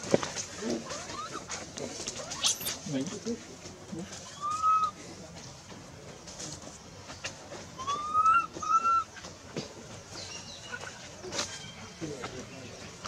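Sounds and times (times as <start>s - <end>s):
infant monkey high calls: 4.2s - 5.0s, 7.8s - 9.2s.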